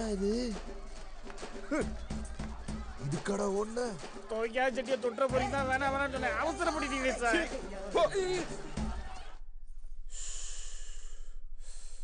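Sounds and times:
man breathing heavily: 0:10.0 - 0:12.0.

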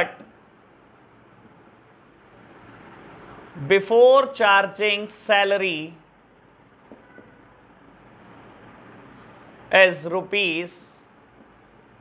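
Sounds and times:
marker pen writing on whiteboard: 0:00.0 - 0:03.9, 0:05.4 - 0:09.7, 0:11.3 - 0:12.0.

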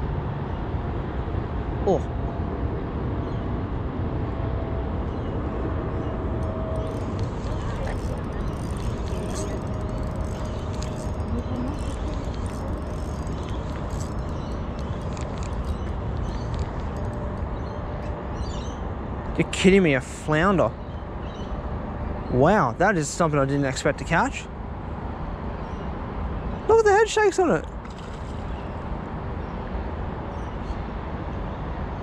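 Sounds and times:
distant road traffic rumble: 0:00.0 - 0:32.0
fishing reel ticking: 0:06.8 - 0:17.2.

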